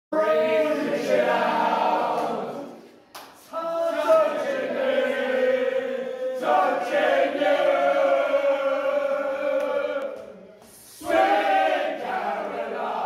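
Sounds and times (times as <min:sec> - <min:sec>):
group singing loudly: 0:00.2 - 0:02.9, 0:03.6 - 0:13.0.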